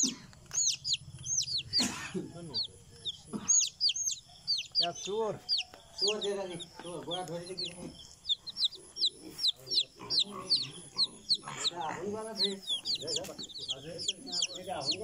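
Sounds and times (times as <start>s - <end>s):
chickens clucking: 0.0s - 15.0s
chicks peeping: 0.0s - 15.0s.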